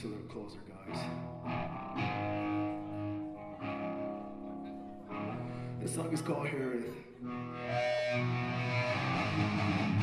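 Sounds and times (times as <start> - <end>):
electric guitar chords ringing: 0.9 - 5.8, 7.1 - 10.0.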